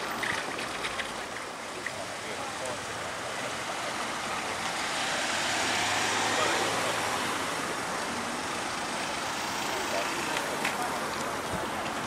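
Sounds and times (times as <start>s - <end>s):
vehicle passing by: 2.0s - 12.0s.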